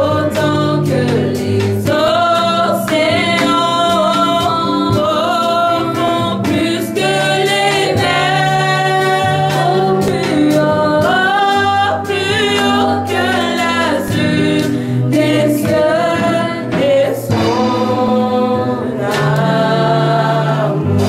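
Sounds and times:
women singing a hymn: 0:00.0 - 0:21.0.

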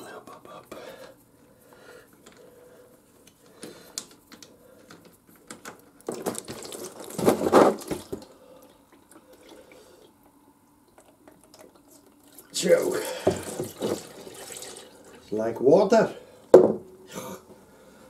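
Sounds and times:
oil pouring into drain pan: 0:11.0 - 0:15.2.

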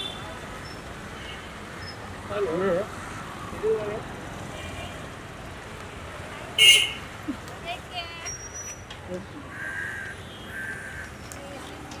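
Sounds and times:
faint street noise: 0:00.0 - 0:12.0.

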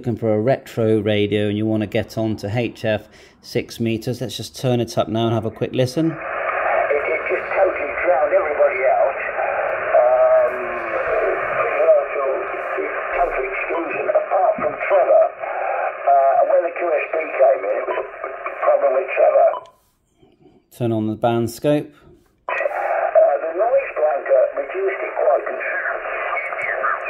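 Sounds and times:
radio operator talking: 0:03.4 - 0:19.8, 0:22.5 - 0:27.0.

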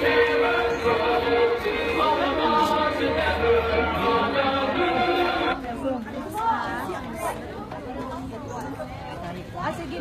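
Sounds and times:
singing with music: 0:00.0 - 0:05.8
people chatting: 0:01.7 - 0:10.0.

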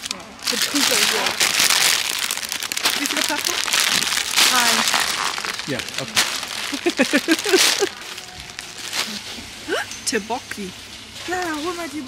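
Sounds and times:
plastic wrappers crinkling: 0:00.0 - 0:09.5.

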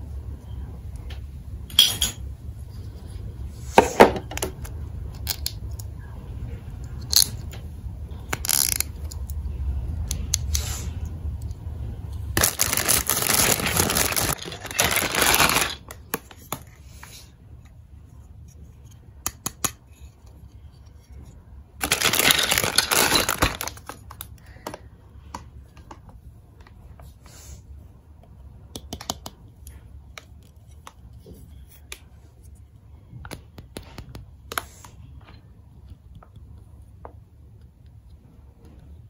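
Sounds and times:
plastic toy pieces clicking: 0:08.3 - 0:09.3
plastic bag crinkling: 0:12.4 - 0:16.0, 0:21.8 - 0:24.2.

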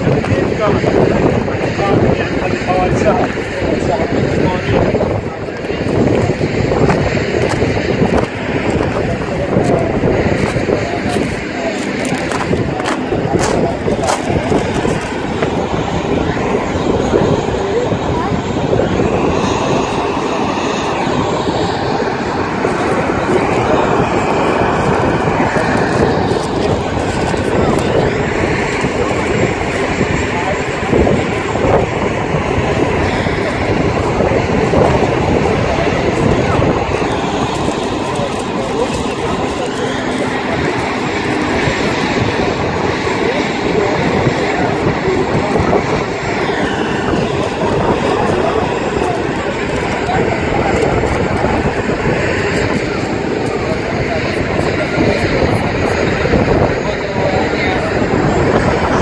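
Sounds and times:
crowd chatter: 0:00.0 - 0:59.0
road traffic: 0:10.4 - 0:19.1.

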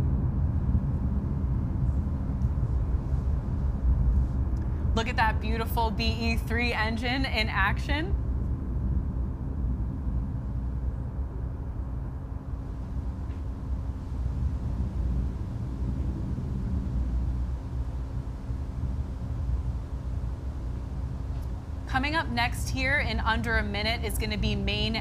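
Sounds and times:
faint steady hum: 0:00.0 - 0:25.0
rocket engine rumble: 0:00.0 - 0:25.0.

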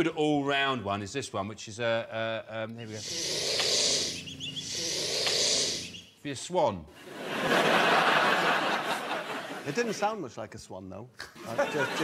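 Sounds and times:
swan hissing: 0:02.9 - 0:06.1
faint high bird chirps: 0:03.8 - 0:06.2.

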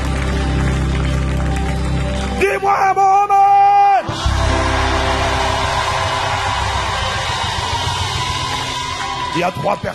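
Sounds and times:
gospel band playing: 0:00.0 - 0:09.8.

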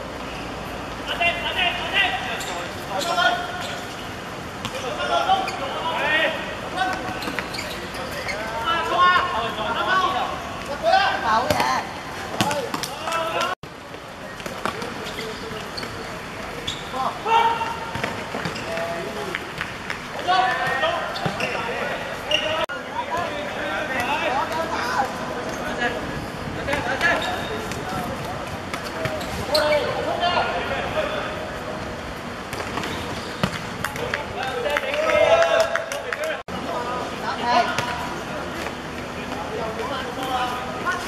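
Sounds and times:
players shouting: 0:16.9 - 0:18.0.

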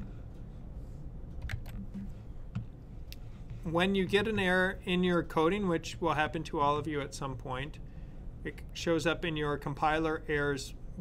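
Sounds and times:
steady low hum: 0:00.0 - 0:11.0
computer keyboard keys clicking: 0:01.4 - 0:02.0.

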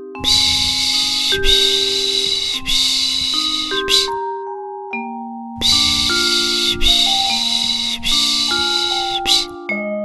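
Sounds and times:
slow lullaby melody: 0:00.0 - 0:10.0
recorded shushing: 0:00.2 - 0:04.2, 0:05.6 - 0:09.6.

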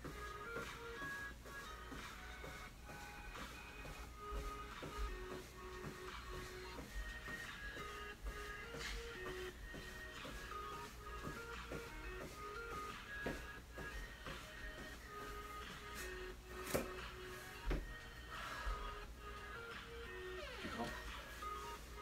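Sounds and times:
background music with melody: 0:00.0 - 0:22.0
sneakers shuffling on exercise mat: 0:00.0 - 0:22.0.

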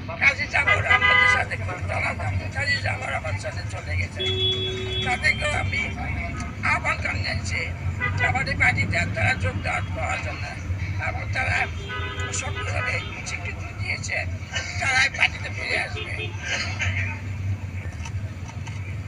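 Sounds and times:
low rumble of road vehicles: 0:00.0 - 0:19.0.

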